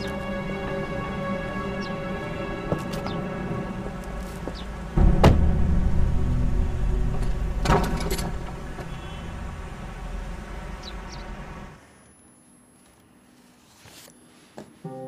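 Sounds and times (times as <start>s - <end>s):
vehicle engine rumble: 0.0s - 11.9s.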